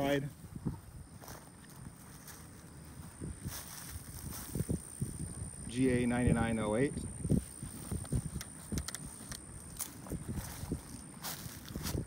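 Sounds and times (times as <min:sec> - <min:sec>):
footsteps through grass: 0:00.0 - 0:05.6, 0:07.2 - 0:12.0
plants rustling: 0:07.2 - 0:12.0.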